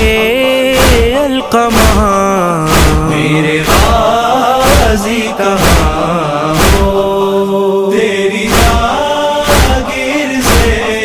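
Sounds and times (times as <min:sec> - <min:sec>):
deep thumping beat: 0:00.0 - 0:07.4, 0:08.5 - 0:11.0
backing voices: 0:00.0 - 0:11.0.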